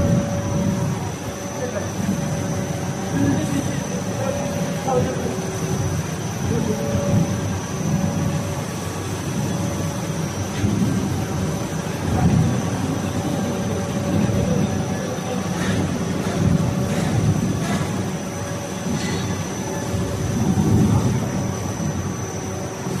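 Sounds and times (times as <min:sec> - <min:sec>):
machine drone with high whine: 0:00.0 - 0:23.0.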